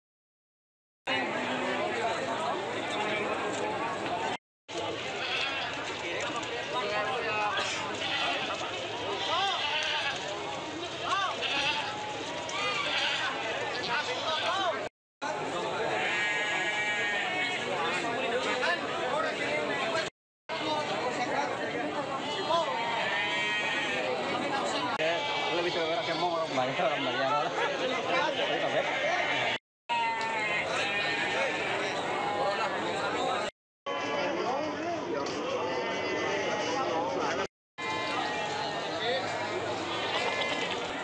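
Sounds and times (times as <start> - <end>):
chatter of men: 1.1 - 41.0
goat bleating: 5.1 - 5.8, 7.6 - 10.2, 11.3 - 13.4, 16.0 - 17.6, 22.6 - 24.0, 24.9 - 26.3, 28.3 - 31.8, 39.9 - 40.9.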